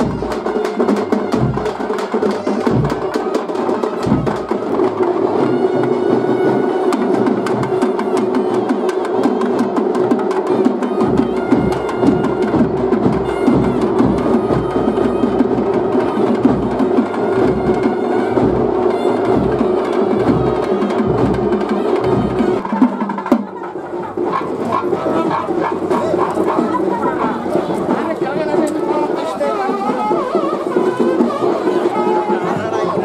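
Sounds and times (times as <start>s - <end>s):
rapid dense drumming: 0.0s - 33.0s.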